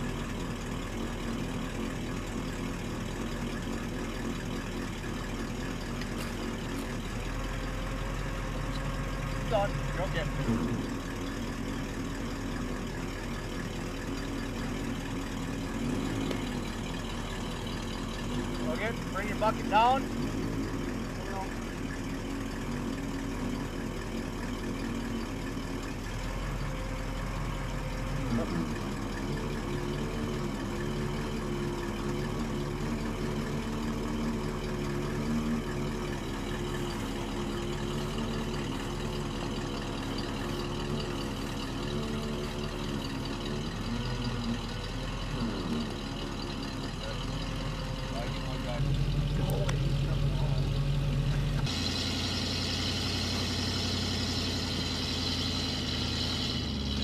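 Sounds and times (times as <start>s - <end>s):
truck engine running: 0.0s - 57.0s.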